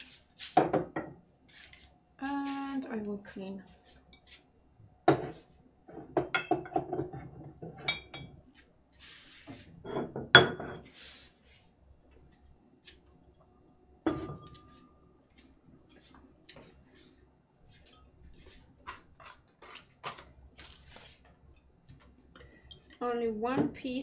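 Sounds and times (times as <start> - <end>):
pottery clinking and knocking on wood: 14.0 - 14.7.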